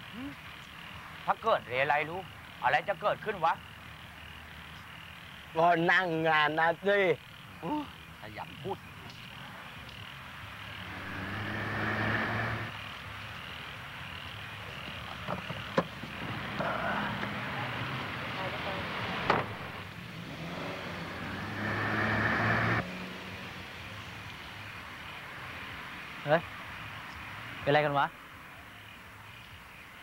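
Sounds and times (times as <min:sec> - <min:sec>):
car engine running: 0:10.6 - 0:12.8, 0:14.4 - 0:22.8.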